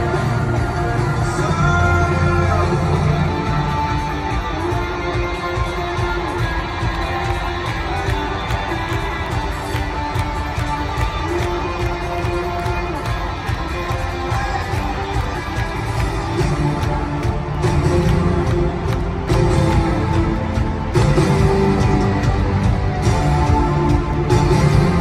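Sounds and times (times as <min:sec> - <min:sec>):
rock band playing live: 0:00.0 - 0:25.0.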